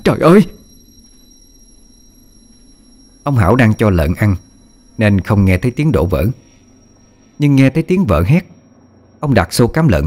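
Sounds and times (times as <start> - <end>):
low hum and hiss: 0.0 - 10.0
thin high-pitched whines: 0.0 - 10.0.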